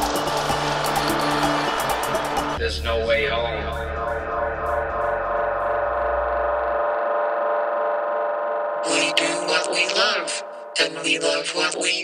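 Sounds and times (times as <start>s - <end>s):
deep bass: 0.0s - 7.4s
held synthesizer chord: 0.0s - 12.0s.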